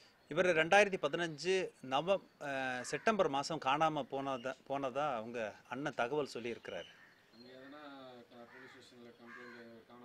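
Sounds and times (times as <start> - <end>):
crows cawing: 2.6 - 3.6, 6.8 - 10.0.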